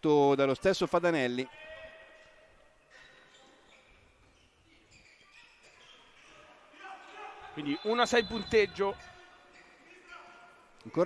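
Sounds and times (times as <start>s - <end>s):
faint sports hall sound: 0.0s - 11.0s.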